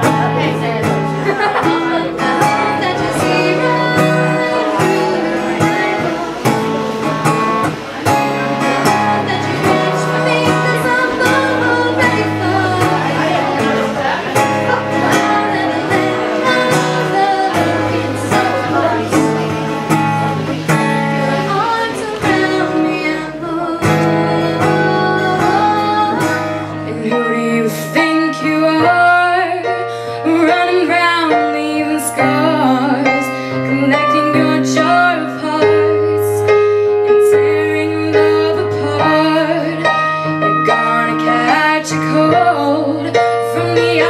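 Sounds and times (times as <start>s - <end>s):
digital piano: 0.0s - 44.0s
girl singing: 0.0s - 44.0s
strummed acoustic guitar: 0.0s - 44.0s.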